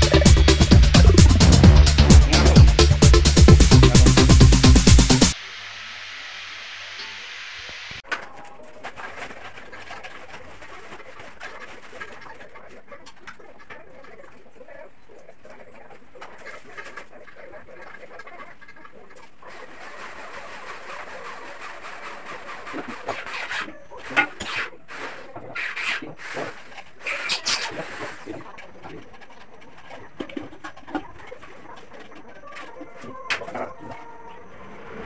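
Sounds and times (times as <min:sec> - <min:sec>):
bird calls: 0:09.6 - 0:35.0.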